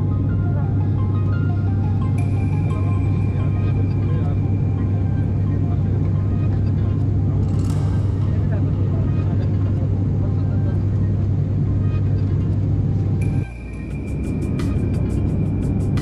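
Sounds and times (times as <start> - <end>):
propeller plane cabin drone: 0.0 - 16.0.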